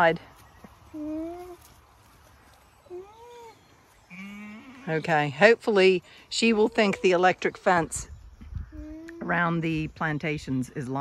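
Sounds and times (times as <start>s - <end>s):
alpaca humming: 2.8s - 5.2s.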